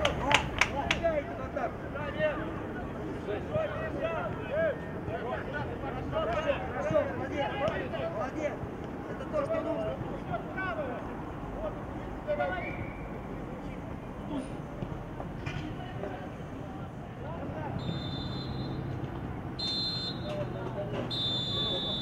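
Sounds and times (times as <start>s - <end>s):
outdoor background noise: 0.0s - 22.0s
voices shouting short calls: 17.7s - 18.9s, 19.6s - 20.4s, 21.0s - 22.0s.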